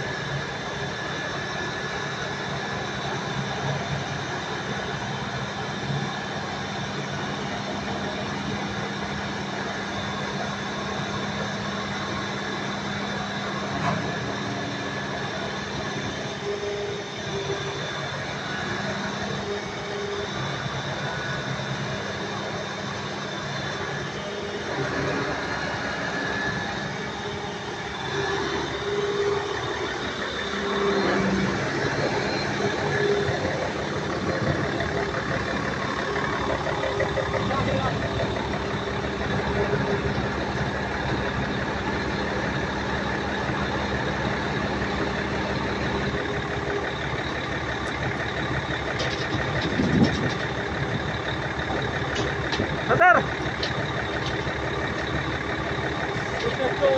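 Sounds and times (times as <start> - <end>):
diesel truck engine running: 0.0 - 56.9
steady engine hum: 0.0 - 56.9.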